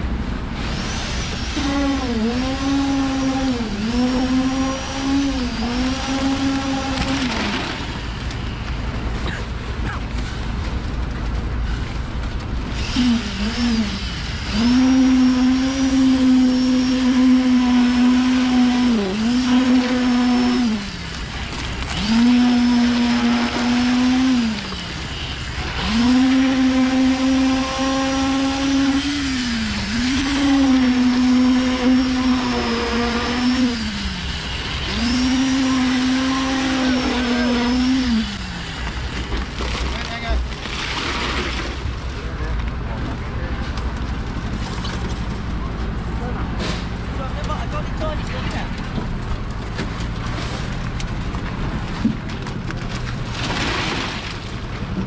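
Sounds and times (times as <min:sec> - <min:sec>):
concrete vibrator humming: 0:00.0 - 0:55.0.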